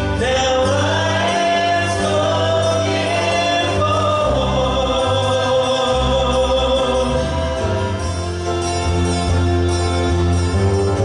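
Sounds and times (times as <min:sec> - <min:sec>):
group singing worship song: 0:00.0 - 0:08.1
instrumental accompaniment: 0:00.0 - 0:11.0.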